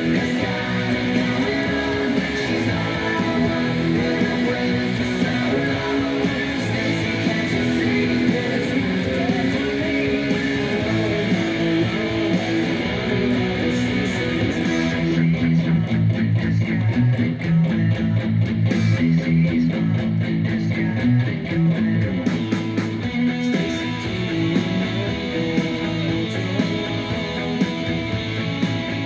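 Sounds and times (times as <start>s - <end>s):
electric guitar played with pick: 0.0s - 29.0s.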